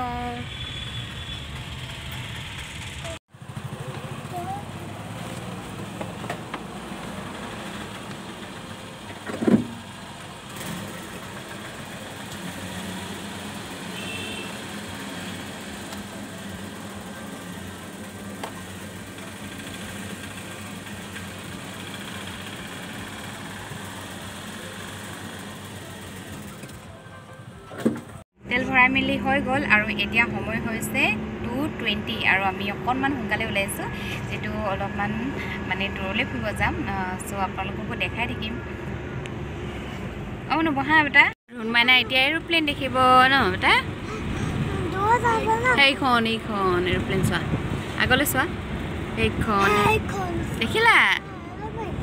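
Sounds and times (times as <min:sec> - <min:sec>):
low vehicle engine hum: 0:01.2 - 0:52.0.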